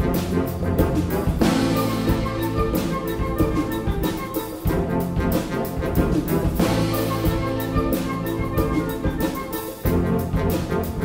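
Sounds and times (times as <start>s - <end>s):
concert wind band playing: 0.0s - 11.0s.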